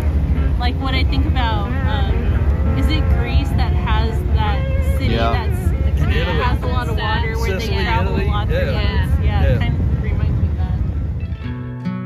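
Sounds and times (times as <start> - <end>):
boat motor rumbling: 0.0 - 11.6
woman talking: 0.4 - 10.8.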